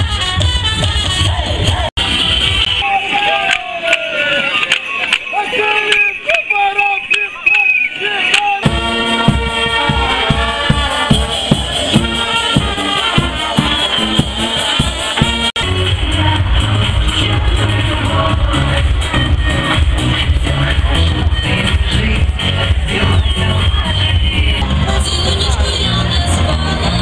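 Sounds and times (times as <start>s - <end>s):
brass band playing: 0.0s - 3.5s, 8.6s - 27.0s
music playing: 0.0s - 6.1s, 8.4s - 27.0s
voices: 2.8s - 15.4s
bass drum beat: 8.6s - 27.0s.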